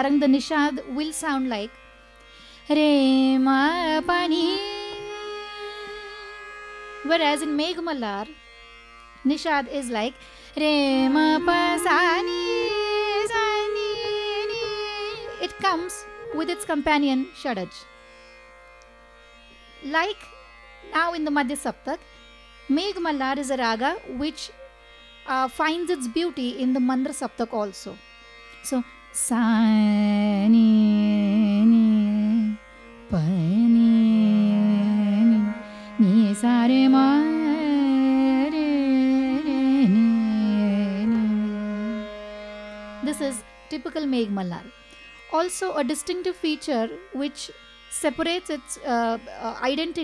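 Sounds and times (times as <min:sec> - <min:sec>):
woman's voice: 0:00.0 - 0:01.7, 0:02.7 - 0:05.2, 0:07.1 - 0:08.4, 0:09.3 - 0:17.8, 0:19.8 - 0:20.3, 0:20.9 - 0:22.0, 0:22.7 - 0:24.6, 0:25.3 - 0:28.0, 0:28.7 - 0:32.6, 0:43.0 - 0:50.0
tanpura drone: 0:00.0 - 0:50.0
woman singing slowly: 0:02.7 - 0:06.2, 0:10.6 - 0:16.8, 0:29.3 - 0:32.6, 0:33.2 - 0:42.0.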